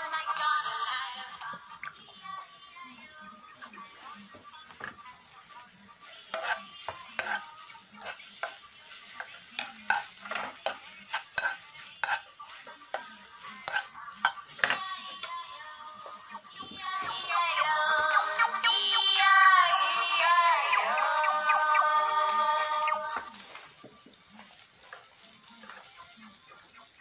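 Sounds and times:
faint frying sizzle: 0.0 - 27.0
music with singing voice: 0.0 - 27.0
spoon knocking against pan: 6.4 - 8.6, 9.2 - 12.2, 12.9 - 15.4.

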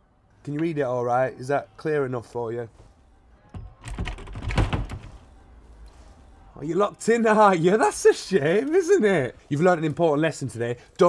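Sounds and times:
locked door rattling: 3.6 - 5.2.

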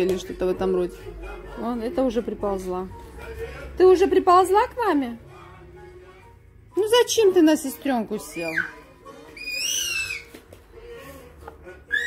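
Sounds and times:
baby squealing: 8.3 - 8.8, 9.4 - 10.3.

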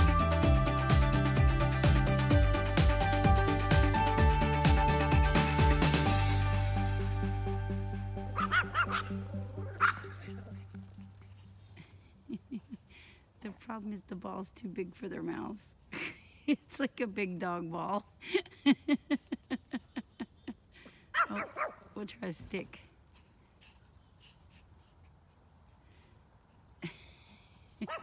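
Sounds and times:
background music: 0.0 - 11.8
small dog barking and yipping: 8.3 - 10.2, 21.1 - 21.8
small dog yipping: 8.4 - 9.2.

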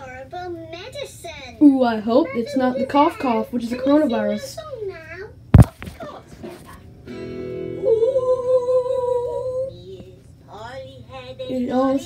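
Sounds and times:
guitar chord: 7.0 - 9.2
held vocal note: 7.7 - 9.7.

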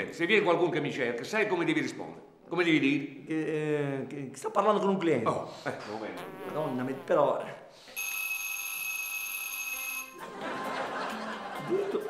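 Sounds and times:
electronic buzzer tone: 6.2 - 7.2.

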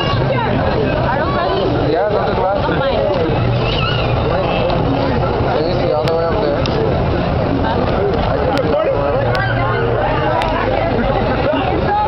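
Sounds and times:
indistinct crowd voices: 0.0 - 12.0.

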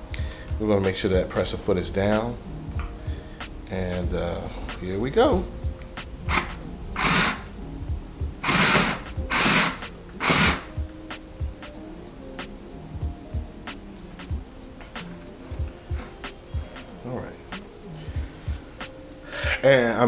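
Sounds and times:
sewing machine stitching: 8.4 - 10.7.

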